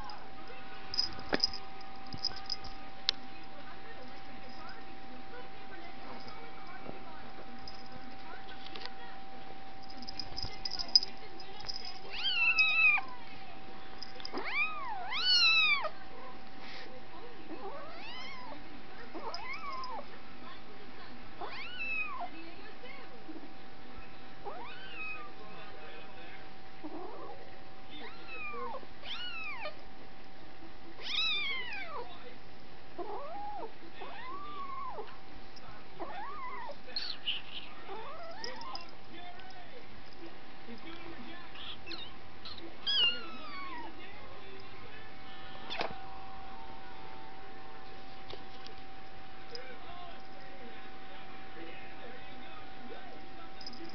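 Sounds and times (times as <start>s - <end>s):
faint high hum: 0.0s - 53.9s
cat meowing: 12.1s - 13.1s, 14.3s - 15.9s, 21.4s - 22.2s, 31.0s - 32.0s.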